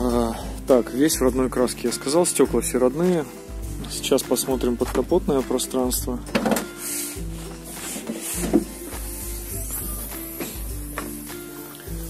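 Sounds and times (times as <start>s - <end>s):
music with low chords: 0.0s - 12.0s.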